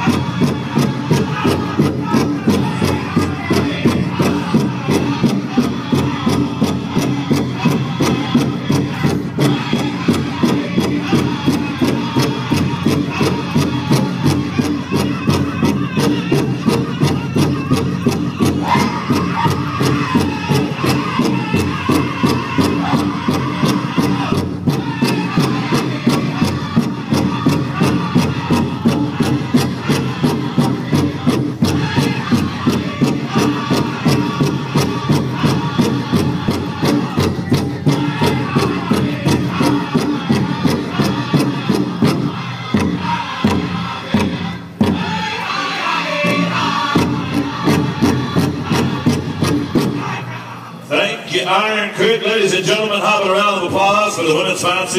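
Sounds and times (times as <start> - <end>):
large drum steady beat: 0.0 - 50.5
group singing: 0.0 - 54.9.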